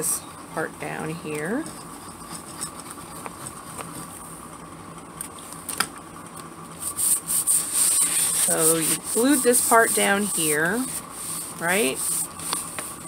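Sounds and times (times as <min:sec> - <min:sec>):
palms rubbing paper: 0:06.8 - 0:13.0.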